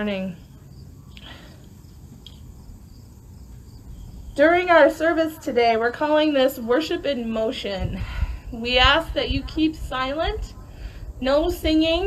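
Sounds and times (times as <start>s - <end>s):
faint crickets chirping: 0.0s - 12.0s.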